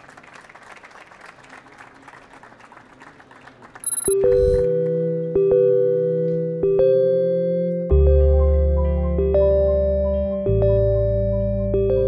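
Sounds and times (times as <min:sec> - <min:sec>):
audience applauding: 0:00.0 - 0:04.2
sustained keyboard chords: 0:04.0 - 0:12.0.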